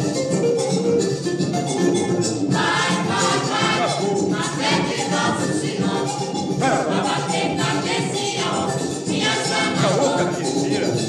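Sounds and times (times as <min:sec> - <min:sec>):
hand percussion: 0:00.0 - 0:11.0
group of voices singing: 0:02.5 - 0:11.0.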